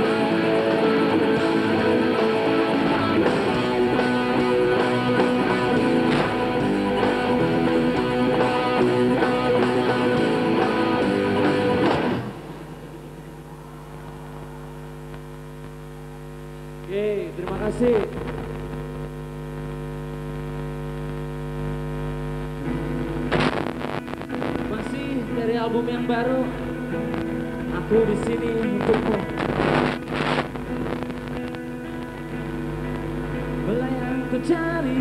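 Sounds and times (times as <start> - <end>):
live rock band playing: 0.0 - 12.7
sustained held tones: 12.4 - 16.9.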